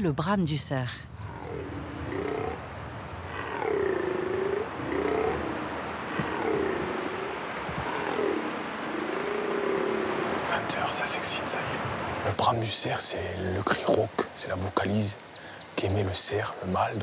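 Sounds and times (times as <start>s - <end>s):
deer stag roaring: 3.3s - 10.5s.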